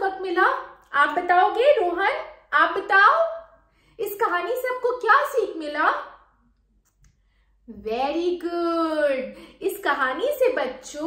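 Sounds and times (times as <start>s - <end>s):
woman speaking: 0.0s - 6.2s, 7.7s - 11.0s.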